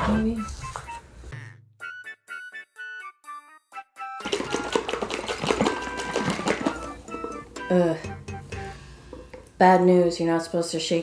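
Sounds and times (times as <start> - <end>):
water sloshing in shaken tube: 4.2 - 7.5.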